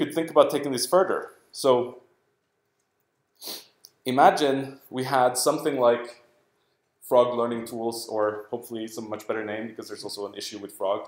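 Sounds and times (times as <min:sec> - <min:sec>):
man talking: 0:00.0 - 0:02.1, 0:03.5 - 0:06.3, 0:07.0 - 0:11.0
sharp breath in: 0:03.4 - 0:03.8.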